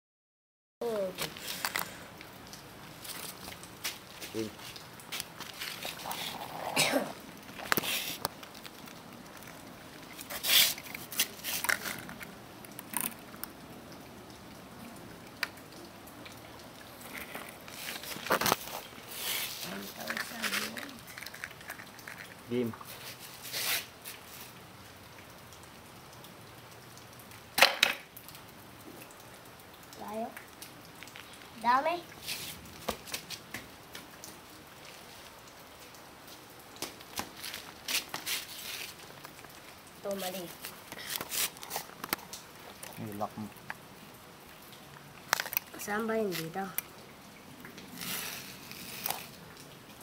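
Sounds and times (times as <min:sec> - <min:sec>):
soft rustle: 0:03.0 - 0:06.8, 0:07.4 - 0:12.3, 0:16.9 - 0:24.6, 0:32.2 - 0:33.5, 0:37.2 - 0:43.0, 0:47.9 - 0:49.4.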